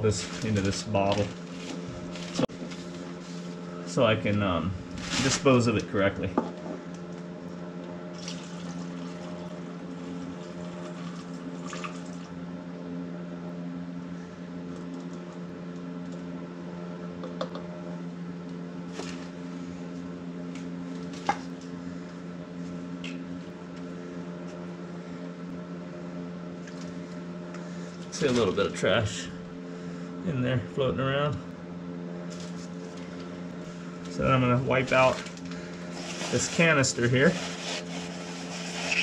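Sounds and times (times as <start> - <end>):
steady machine hum: 0.0 - 39.0.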